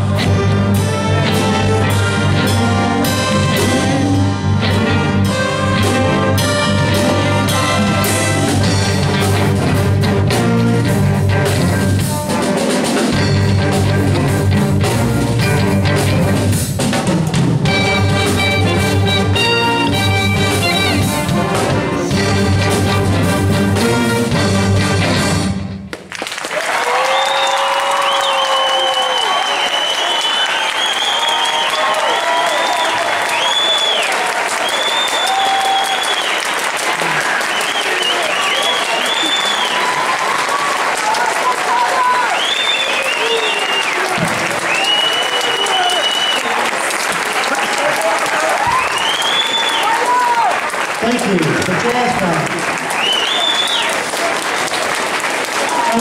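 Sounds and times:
audience applauding and cheering: 25.8s - 56.0s
high whistles: 27.3s - 36.6s, 37.4s - 40.1s, 42.2s - 46.6s, 48.7s - 50.0s, 53.0s - 53.9s.

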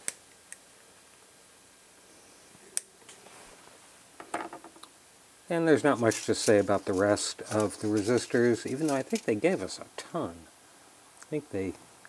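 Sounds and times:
flush cutters snipping wire: 5.9s - 9.4s.

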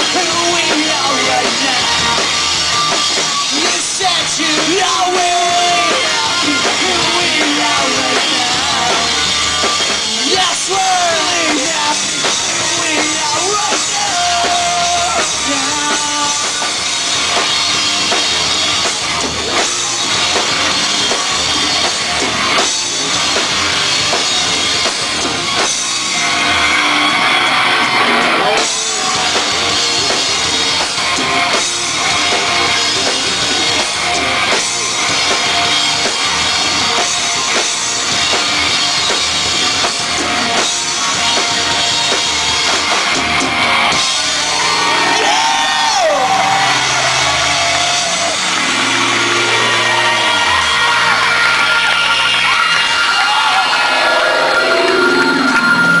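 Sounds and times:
distorted rock band playing: 0.0s - 56.0s
crowd shouts and whoops: 26.1s - 38.1s, 41.3s - 56.0s
high feedback tone: 46.2s - 56.0s.

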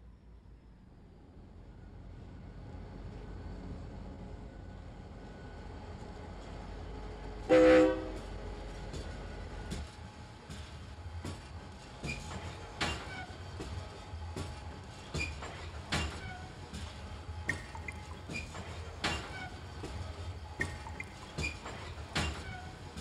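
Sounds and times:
sharp knocks and clanks: 8.9s - 13.8s, 14.4s - 23.0s.

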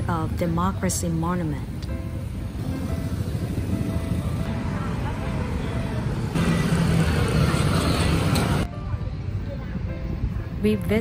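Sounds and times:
vehicle engines running: 1.9s - 8.7s.

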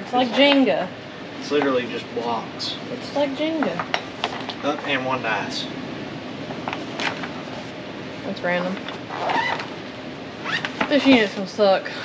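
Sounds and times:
person speaking: 2.3s - 3.8s.

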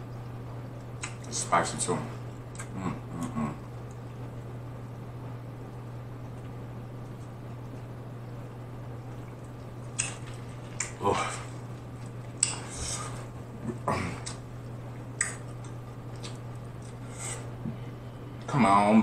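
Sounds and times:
steady low hum: 0.0s - 19.0s
person swallowing: 2.6s - 3.8s, 13.5s - 14.5s.

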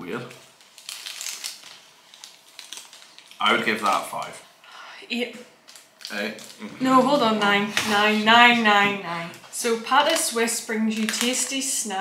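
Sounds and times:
plastic wrapper crinkling: 0.2s - 4.4s, 5.6s - 6.7s, 9.4s - 12.0s.

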